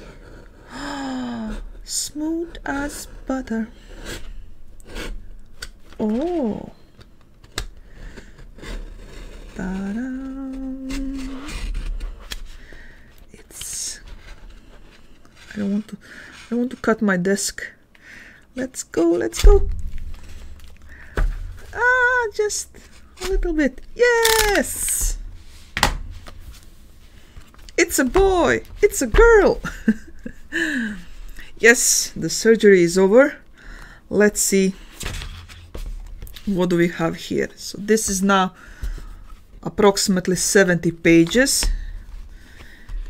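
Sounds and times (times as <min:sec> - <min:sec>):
person humming: 0:06.0 - 0:06.8, 0:09.7 - 0:11.5
low handling bump: 0:19.5 - 0:21.8
book knocking against desk: 0:25.7 - 0:26.6.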